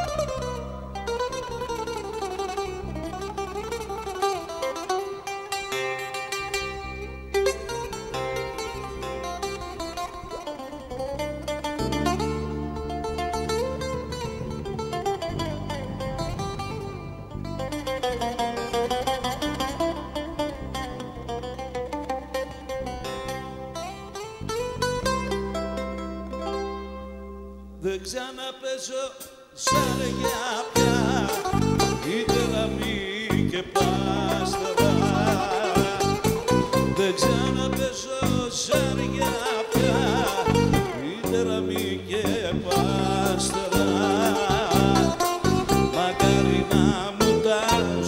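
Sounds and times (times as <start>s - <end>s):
bouzouki melody: 0.0s - 27.8s, 29.7s - 48.0s
bass guitar: 0.0s - 28.2s, 29.7s - 48.0s.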